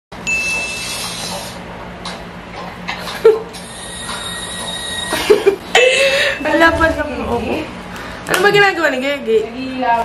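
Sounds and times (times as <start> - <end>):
woman laughing: 5.1 - 6.6.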